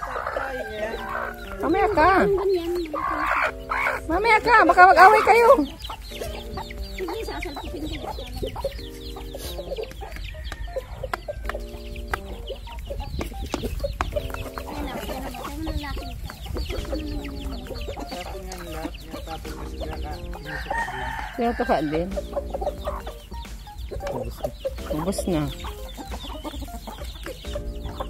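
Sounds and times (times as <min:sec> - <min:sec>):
chickens clucking: 0:00.0 - 0:28.0
chicks peeping: 0:00.0 - 0:28.0.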